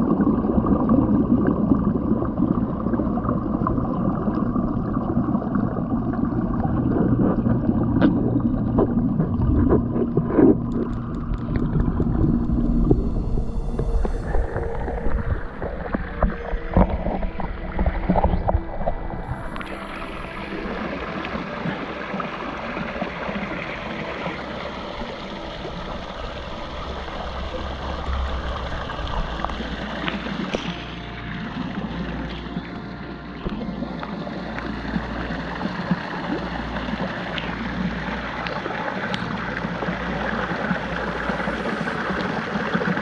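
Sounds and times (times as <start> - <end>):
water sloshing against camera: 6.3 - 43.0
waterfall splashing into pond: 19.4 - 30.9, 34.6 - 43.0.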